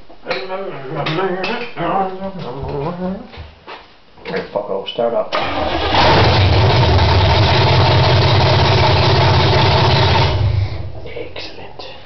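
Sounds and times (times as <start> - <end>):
car engine running loudly: 5.9 - 10.9.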